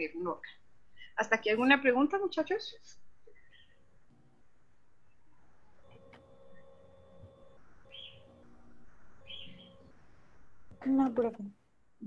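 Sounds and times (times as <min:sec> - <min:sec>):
faint pitched tones: 0:00.4 - 0:11.6
faint chirping calls: 0:02.8 - 0:04.0, 0:05.1 - 0:10.9
person speaking: 0:10.8 - 0:11.6.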